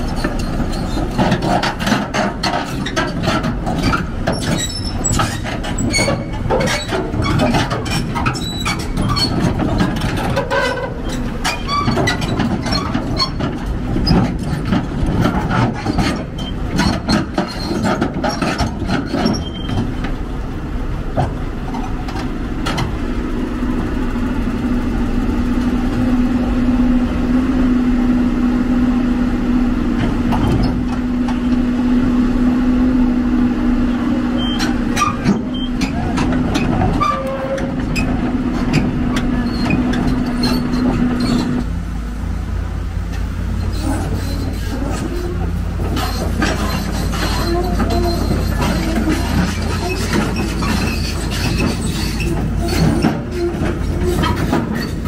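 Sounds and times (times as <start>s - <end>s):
steel tracks clanking: 0.0s - 41.7s, 42.4s - 55.0s
excavator diesel engine working: 0.0s - 55.0s.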